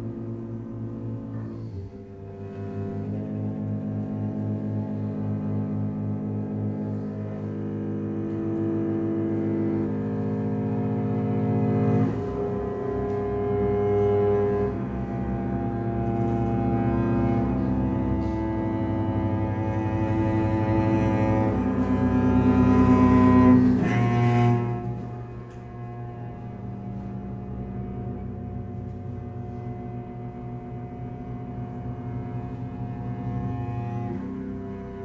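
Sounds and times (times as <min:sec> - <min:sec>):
bowed cello and double bass chords: 0:00.0 - 0:35.0.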